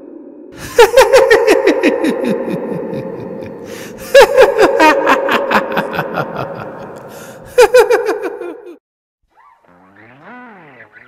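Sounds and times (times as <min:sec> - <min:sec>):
cackling laughter: 0:00.6 - 0:08.8.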